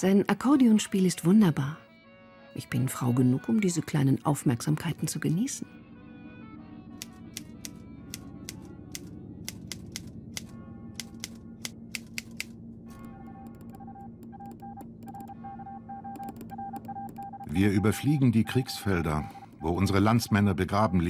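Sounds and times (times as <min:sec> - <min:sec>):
low steady drone: 0:04.0 - 0:21.0.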